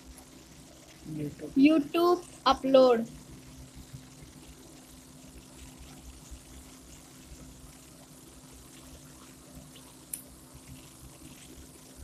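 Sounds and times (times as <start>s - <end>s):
faint background hum: 0.0s - 12.0s
low hiss: 0.0s - 12.0s.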